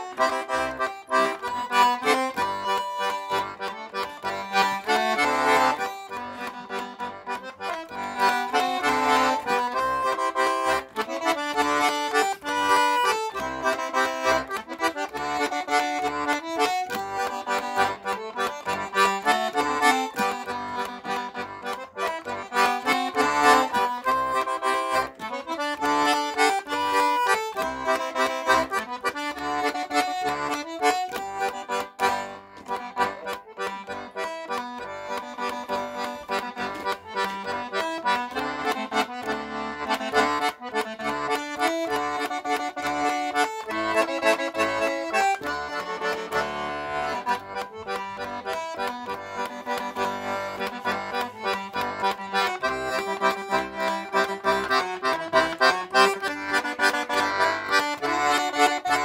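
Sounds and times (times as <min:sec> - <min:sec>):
button accordion playing a waltz: 0:00.0 - 0:59.0.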